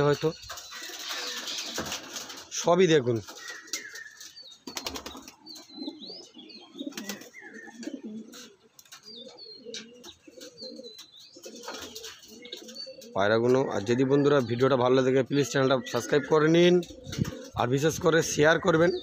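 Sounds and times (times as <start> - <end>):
pigeons cooing: 0.0 - 19.0
small birds chirping: 0.0 - 19.0.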